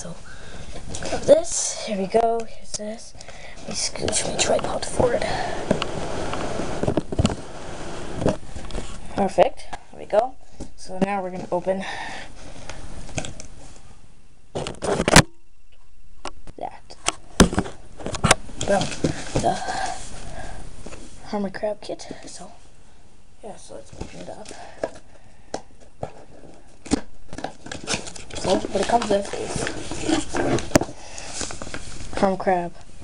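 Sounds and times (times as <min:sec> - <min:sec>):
cardboard tearing: 0:26.8 - 0:31.6
cardboard box rustling and scraping: 0:27.4 - 0:32.1.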